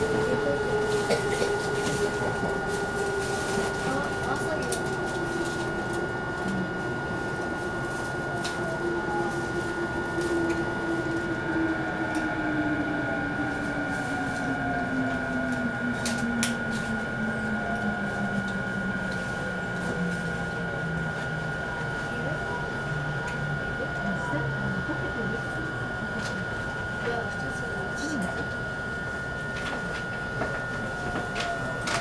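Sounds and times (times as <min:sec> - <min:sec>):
electric train motors whining: 0:00.0 - 0:32.0
train running noise: 0:00.0 - 0:32.0.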